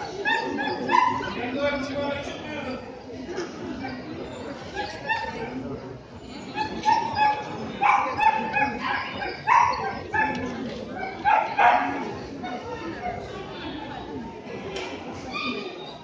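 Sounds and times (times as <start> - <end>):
dog yipping: 0.0 - 1.4, 3.9 - 5.6, 6.5 - 13.2
murmur of voices: 0.0 - 16.0.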